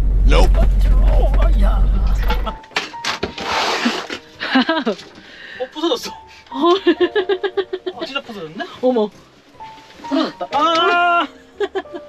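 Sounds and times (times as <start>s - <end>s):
road and engine rumble: 0.0s - 2.6s.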